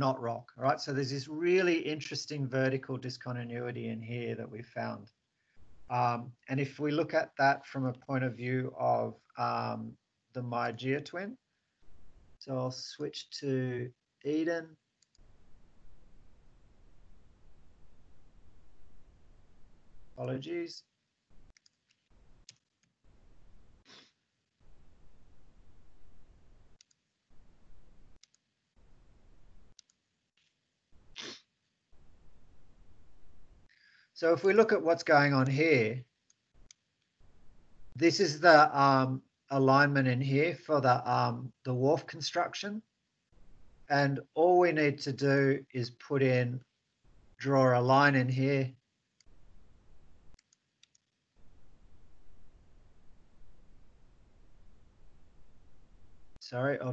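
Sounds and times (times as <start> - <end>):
computer mouse clicks: 21.5 - 23.0, 26.8 - 27.1, 28.2 - 28.5, 29.7 - 30.5, 50.3 - 51.2.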